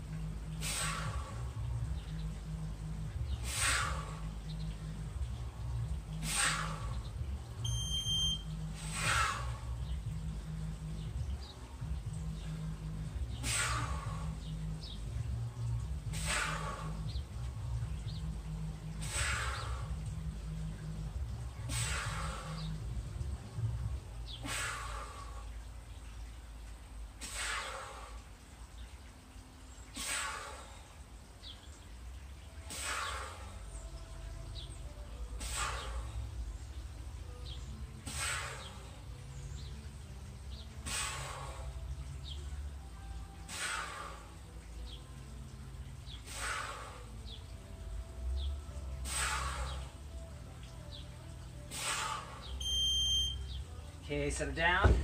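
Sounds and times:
interval timer beeping: 7.6s - 8.6s, 52.6s - 53.5s.

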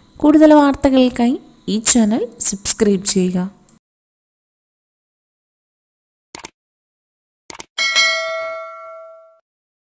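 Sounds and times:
notification bell ding: 7.8s - 9.4s.

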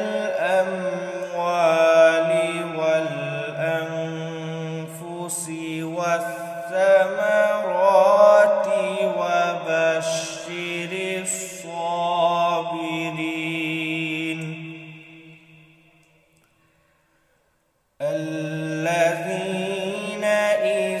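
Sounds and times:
man chanting melodic recitation: 0.0s - 15.8s, 18.0s - 21.0s.

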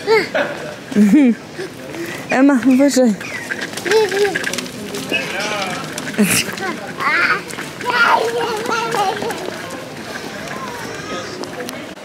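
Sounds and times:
faint voices: 0.0s - 12.0s
street background: 0.0s - 12.0s
small child babbling: 3.8s - 4.5s.

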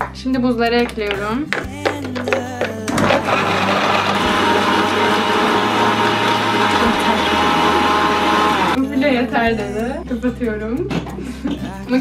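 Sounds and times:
blender motor whirring: 2.9s - 8.8s.

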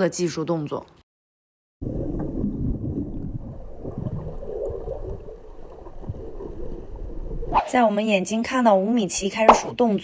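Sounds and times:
muffled underwater churning: 1.8s - 7.6s.

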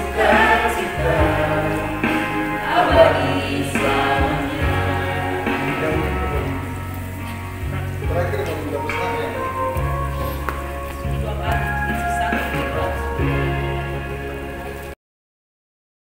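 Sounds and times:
choir singing: 0.0s - 14.4s
instrumental accompaniment: 0.0s - 15.0s.

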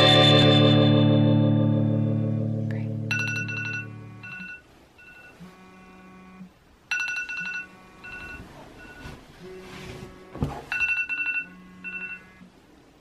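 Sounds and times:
phone ringing with pulsing tone: 3.1s - 12.5s.

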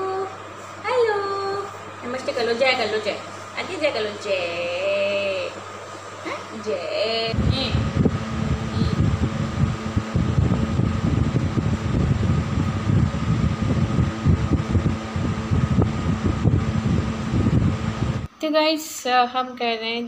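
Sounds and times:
faint fan hum: 0.0s - 20.0s
wind buffeting microphone: 7.3s - 18.3s.

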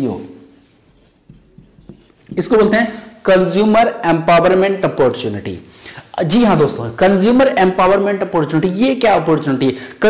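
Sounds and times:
marker pen on whiteboard: 0.0s - 4.7s.

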